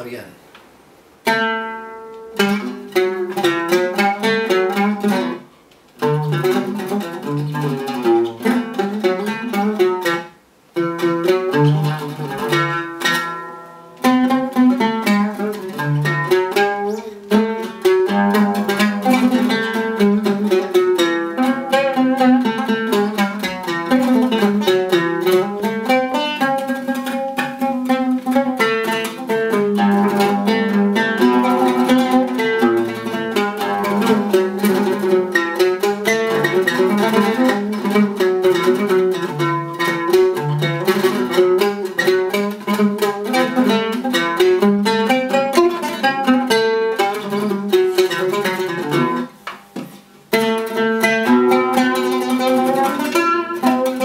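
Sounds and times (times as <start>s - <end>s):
oud played solo: 0.0s - 54.0s.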